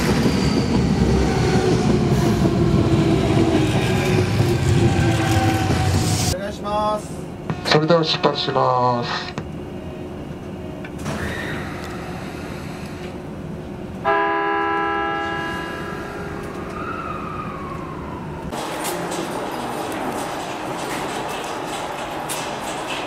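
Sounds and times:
steady train noise: 0.0s - 23.0s
train horn blast: 14.0s - 16.3s.

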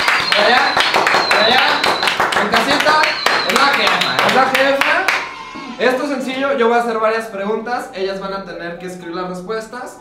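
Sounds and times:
people clapping: 0.0s - 5.4s.

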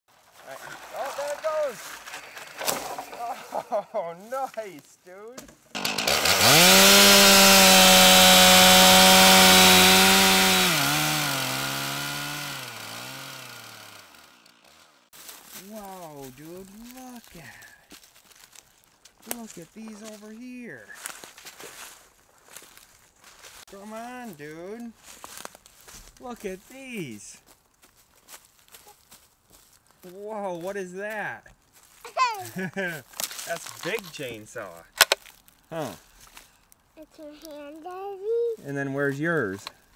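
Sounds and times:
footsteps crunching dry leaves: 0.1s - 5.1s, 14.6s - 36.7s
child calling out: 32.1s - 32.5s, 37.0s - 38.6s.

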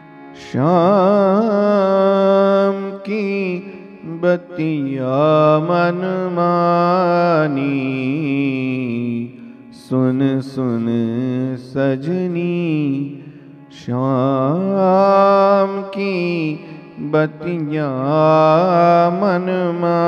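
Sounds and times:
man singing into microphone: 0.3s - 20.0s.

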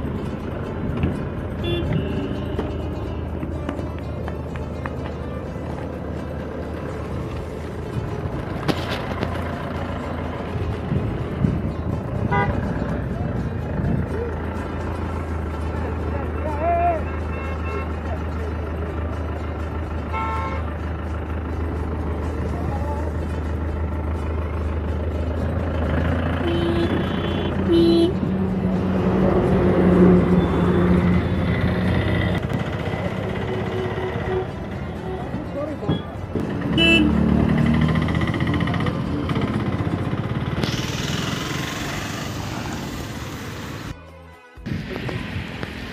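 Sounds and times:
traffic engine hum: 0.0s - 45.9s
vehicle horns honking: 1.5s - 3.2s, 12.2s - 12.8s, 16.4s - 18.1s, 20.0s - 20.8s, 26.3s - 28.4s, 33.2s - 37.4s, 44.0s - 45.0s
voices: 12.5s - 24.9s, 25.7s - 43.3s.

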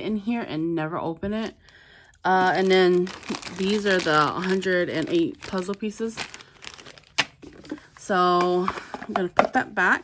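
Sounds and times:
plastic bag crinkling: 1.4s - 8.2s.

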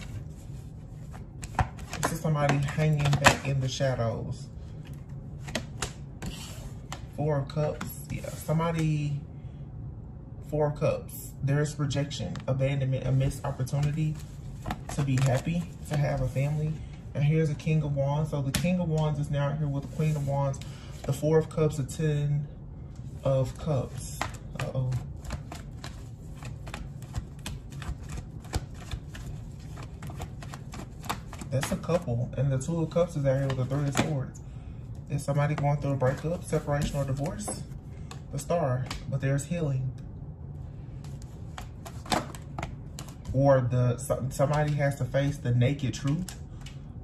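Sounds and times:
cards being shuffled: 0.0s - 3.8s, 4.7s - 8.9s, 12.3s - 16.9s, 23.0s - 34.2s, 35.5s - 39.1s, 41.0s - 43.4s
faint low hum: 0.0s - 47.0s.

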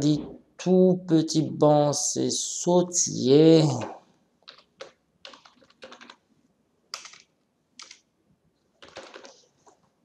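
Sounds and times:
computer keyboard typing: 4.4s - 6.2s, 6.9s - 8.0s, 8.8s - 9.5s.

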